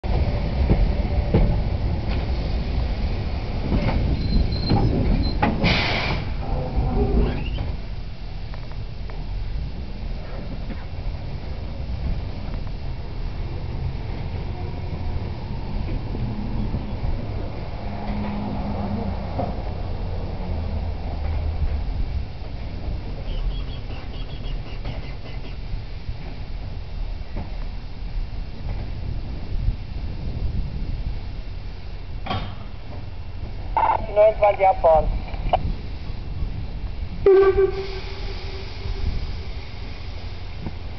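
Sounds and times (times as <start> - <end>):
steam train rumble and exhaust beats: 0.0 - 40.9
brief high squeal: 7.2 - 7.7.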